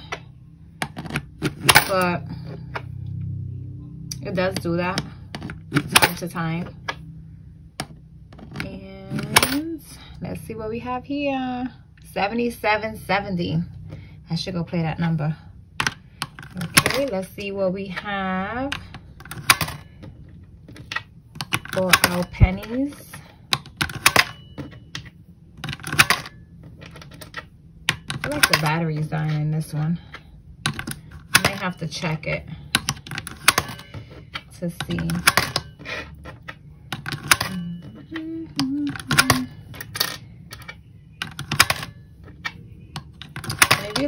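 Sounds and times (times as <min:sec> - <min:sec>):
coin clicking through slot: 0:00.8 - 0:02.2, 0:05.7 - 0:06.5, 0:09.1 - 0:09.7, 0:18.7 - 0:20.0, 0:20.7 - 0:29.7, 0:30.7 - 0:44.0.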